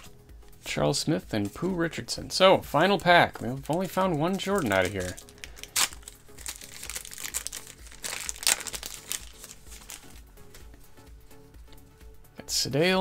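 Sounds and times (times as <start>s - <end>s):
faint background music: 0.0s - 13.0s
foil wrapper tearing and crinkling: 4.3s - 10.2s.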